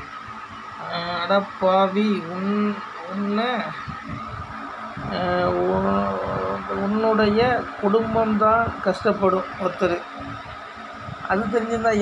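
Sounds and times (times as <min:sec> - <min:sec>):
person talking: 0:00.8 - 0:04.2, 0:05.0 - 0:10.1, 0:11.2 - 0:12.0.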